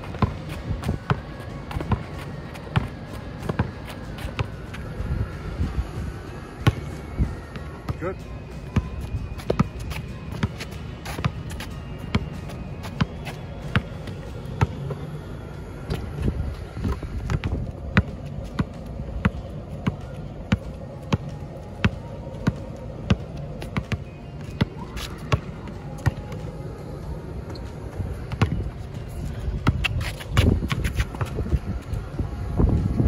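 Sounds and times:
basketball bouncing on asphalt: 0:00.0 - 0:04.9, 0:06.6 - 0:06.9, 0:07.9 - 0:15.1, 0:15.7 - 0:26.5, 0:27.5 - 0:28.8, 0:29.4 - 0:31.9.

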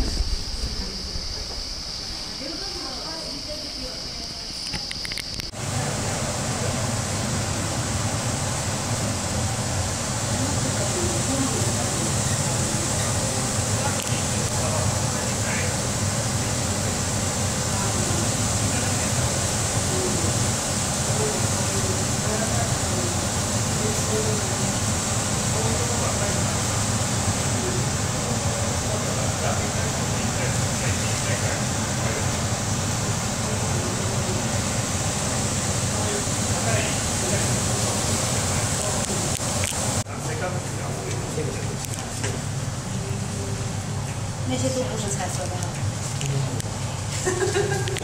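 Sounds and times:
ventilation fans rushing air: 0:00.0 - 0:48.0.

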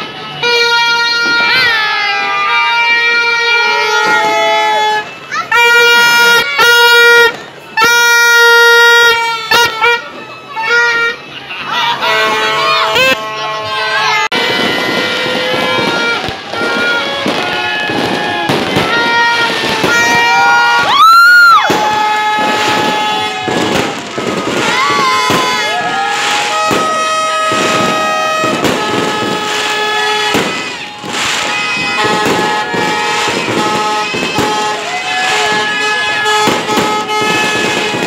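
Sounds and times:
fireworks bursting and crackling: 0:00.0 - 0:11.2, 0:12.0 - 0:38.0
horns tooting: 0:00.0 - 0:38.0.

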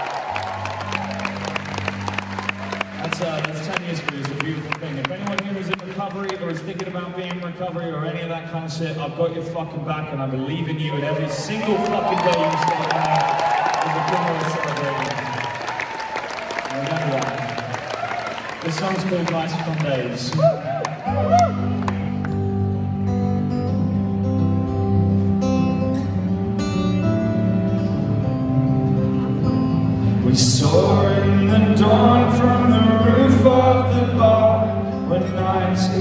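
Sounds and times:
audience shouts: 0:00.0 - 0:03.5, 0:10.9 - 0:22.0
audience applauding: 0:00.0 - 0:07.5, 0:11.0 - 0:22.6
crowd clapping: 0:00.0 - 0:07.9, 0:11.2 - 0:22.6
song chords playing: 0:21.6 - 0:30.4.

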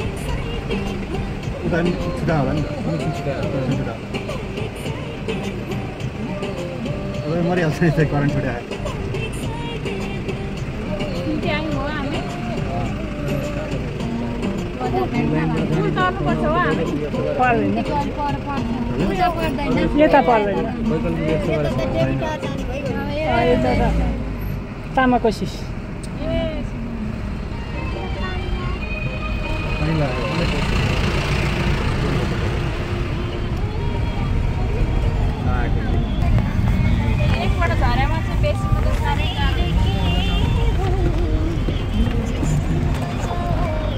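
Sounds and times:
vehicle rumble: 0:00.0 - 0:43.9
voices: 0:00.0 - 0:43.9.

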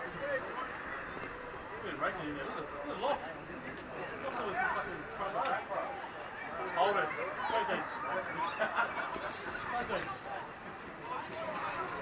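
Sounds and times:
voices calling out and talking: 0:00.0 - 0:12.0.

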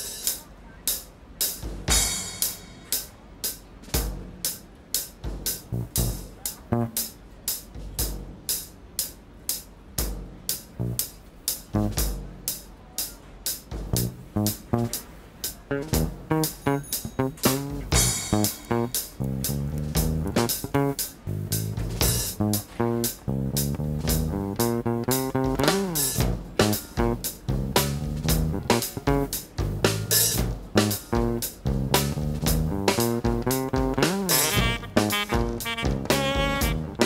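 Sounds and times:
drum kit beat: 0:00.0 - 0:37.0
electric bass guitar: 0:11.8 - 0:12.1, 0:13.9 - 0:15.0, 0:15.7 - 0:37.0.

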